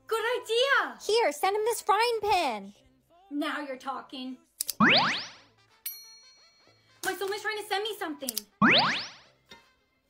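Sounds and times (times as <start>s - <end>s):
bell-like ding: 5.9s - 6.9s.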